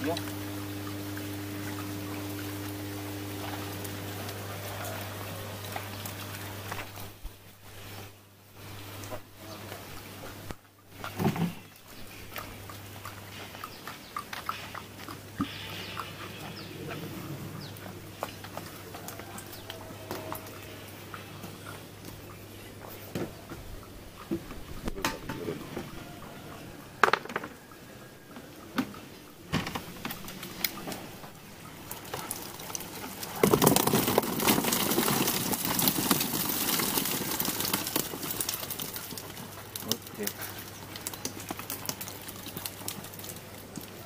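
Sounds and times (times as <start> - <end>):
low steady hum: 0.0 - 35.9.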